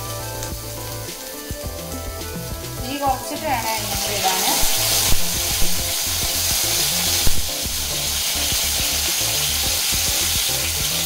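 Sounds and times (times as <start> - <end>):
meat sizzling in hot oil: 0.0 - 11.0.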